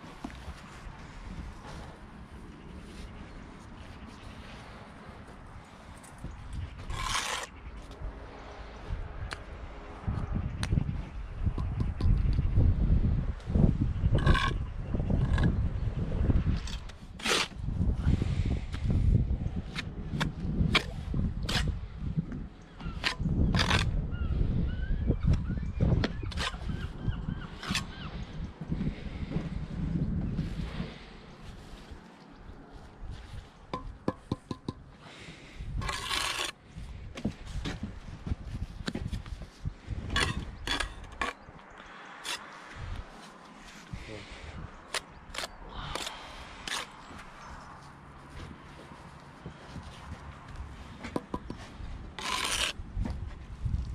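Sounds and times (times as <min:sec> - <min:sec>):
trowel scraping mortar: 0:06.8 - 0:07.6, 0:16.6 - 0:17.6, 0:35.8 - 0:36.6, 0:40.1 - 0:41.4, 0:52.2 - 0:52.8
trowel tapping bricks: 0:33.7 - 0:34.9, 0:51.0 - 0:52.7.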